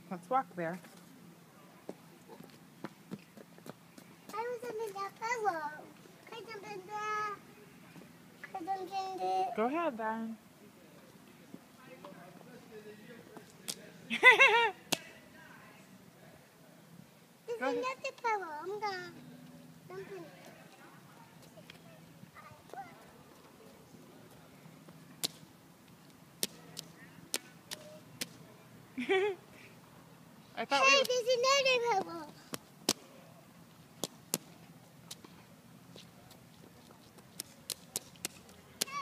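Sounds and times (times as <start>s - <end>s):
shoes slapping in a puddle: 25.2s - 25.4s, 37.0s - 39.0s.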